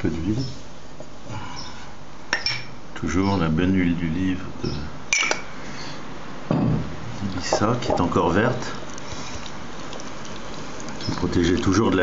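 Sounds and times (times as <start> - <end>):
kitchenware clink: 2.3 - 2.7, 5.1 - 5.4, 6.5 - 6.9.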